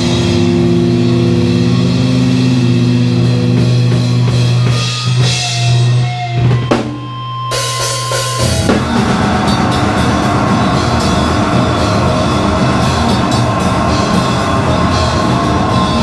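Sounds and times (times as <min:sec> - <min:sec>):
fast drums and distorted guitar: 0:00.0 - 0:16.0
held distorted low note: 0:08.4 - 0:16.0
thin high whine: 0:08.4 - 0:16.0.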